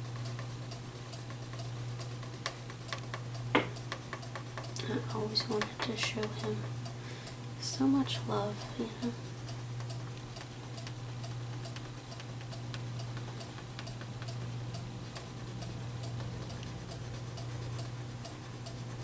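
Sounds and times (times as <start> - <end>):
steady low hum: 0.0 - 19.0
crayon scribbling on paper: 16.2 - 19.0.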